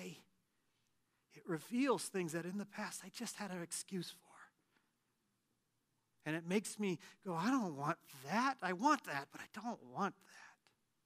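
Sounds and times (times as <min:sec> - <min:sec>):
man's voice: 0:00.0 - 0:00.3, 0:01.4 - 0:04.5, 0:06.2 - 0:10.6.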